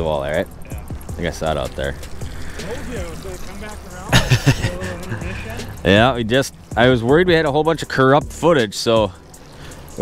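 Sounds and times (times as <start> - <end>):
indistinct talking: 0.0 - 8.4.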